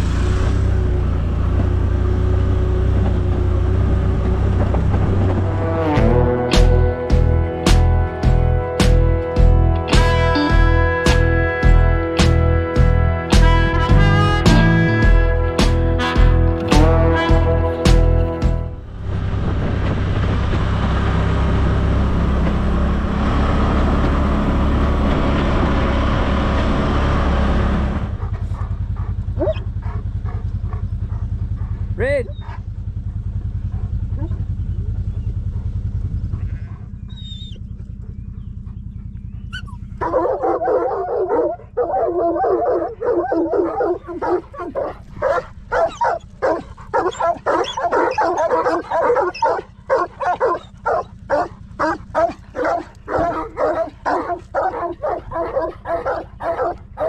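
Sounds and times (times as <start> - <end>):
farm vehicle engine running: 0.0 - 57.0
dog barking: 28.2 - 31.8, 39.6 - 57.0.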